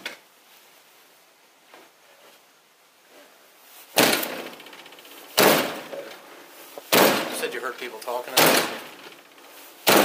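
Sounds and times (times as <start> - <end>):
heavy blows against door: 4.0 - 6.0, 6.8 - 7.6, 8.3 - 9.2.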